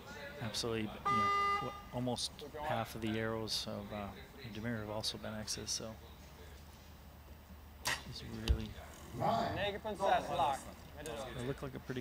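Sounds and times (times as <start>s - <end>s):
low steady hum: 0.0s - 11.0s
bow shot crack: 7.8s - 8.1s.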